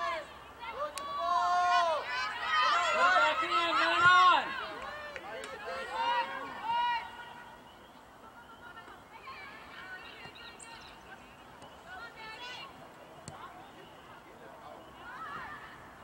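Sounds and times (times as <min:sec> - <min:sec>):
voices shouting and calling: 0:00.0 - 0:16.0.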